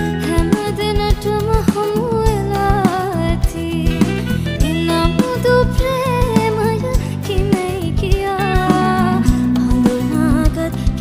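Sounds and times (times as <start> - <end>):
backing music with steady beat: 0.0 - 11.0
woman singing into a microphone: 0.0 - 11.0.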